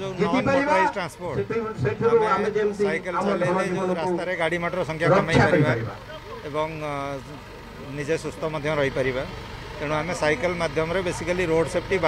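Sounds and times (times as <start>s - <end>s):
speech: 0.0s - 7.2s
outdoor background noise: 0.0s - 12.0s.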